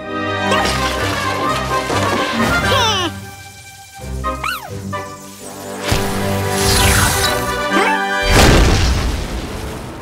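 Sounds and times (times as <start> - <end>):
background music: 0.0 - 9.1.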